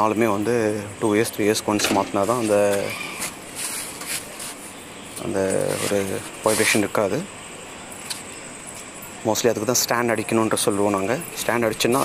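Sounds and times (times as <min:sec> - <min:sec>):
rubber pad rubbing and scraping: 0:02.2 - 0:04.7, 0:05.6 - 0:06.9.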